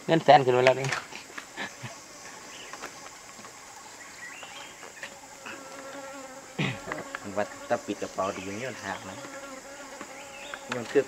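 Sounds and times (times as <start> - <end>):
flying insect buzzing: 1.0 - 11.0.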